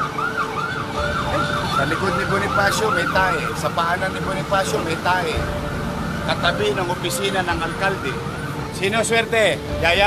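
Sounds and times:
electronic siren yelping: 0.0s - 9.0s.

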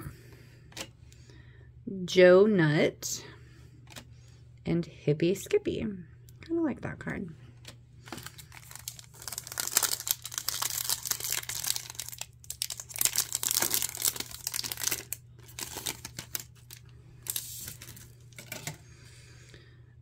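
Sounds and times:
foil wrapper crinkling: 8.0s - 18.8s.

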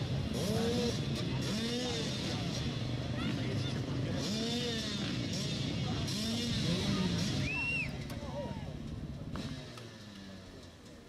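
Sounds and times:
crowd voices: 0.0s - 11.0s
motorcycle engines revving: 0.0s - 11.0s.

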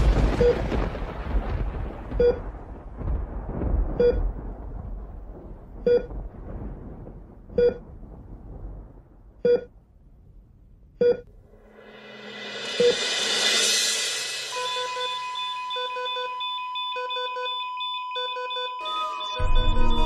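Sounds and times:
deep rumble: 0.0s - 14.3s, 19.4s - 20.0s
patient monitor beeping: 14.6s - 20.0s.

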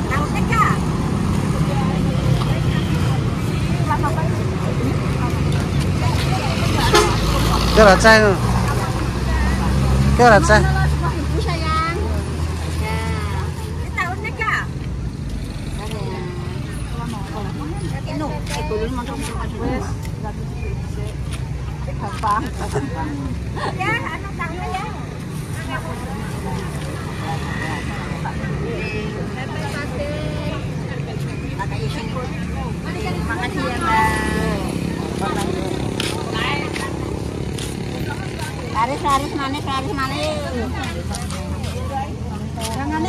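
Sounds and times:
people talking: 0.0s - 14.8s, 15.7s - 43.0s
motorcycle engines: 0.0s - 43.0s
traffic rumble: 0.0s - 43.0s.

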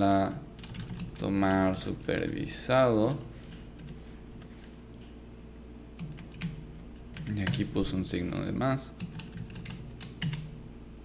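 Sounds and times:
computer keyboard key clicks: 9.0s - 10.5s.

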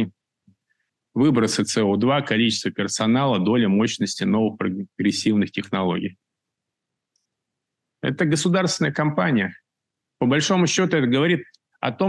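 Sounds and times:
man speaking: 1.2s - 6.1s, 8.0s - 9.6s, 10.2s - 12.0s.

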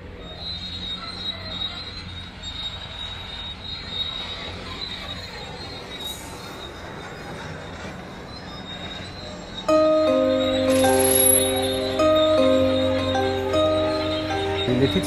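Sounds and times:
high-pitched squeal: 0.0s - 15.0s.

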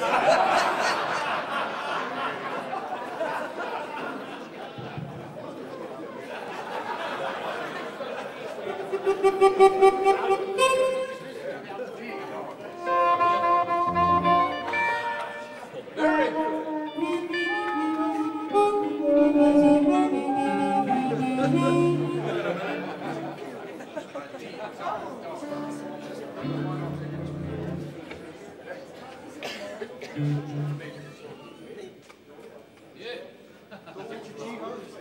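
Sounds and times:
amplified harmonicas playing: 8.9s - 23.4s, 25.4s - 28.1s, 30.2s - 31.4s.

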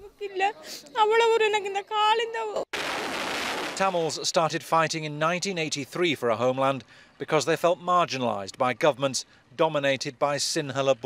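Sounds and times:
rocket launch rushing noise: 2.8s - 4.1s.

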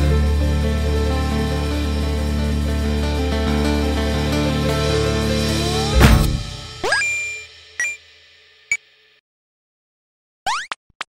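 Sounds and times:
background music: 0.0s - 7.8s
upward swoop effect: 4.4s - 7.5s
bright ding: 5.6s - 8.0s.

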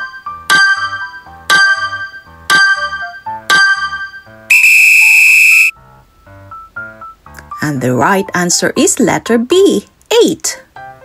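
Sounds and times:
high buzzer tone: 4.5s - 5.7s.

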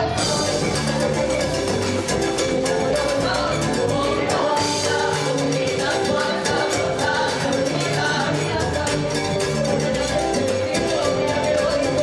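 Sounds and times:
hand drums: 0.0s - 12.0s
live band dance music: 0.0s - 12.0s.

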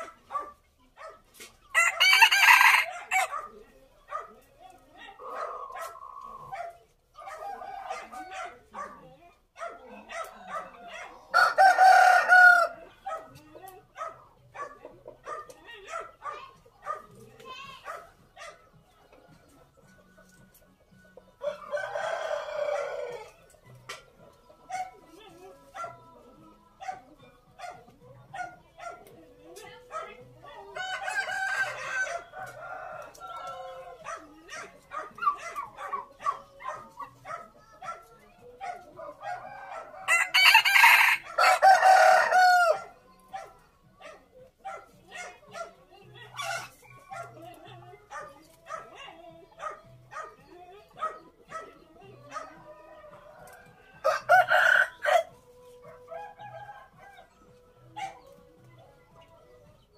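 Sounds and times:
rooster crowing: 1.7s - 3.3s, 11.3s - 12.8s, 30.8s - 33.9s, 39.5s - 42.9s, 53.5s - 55.3s.

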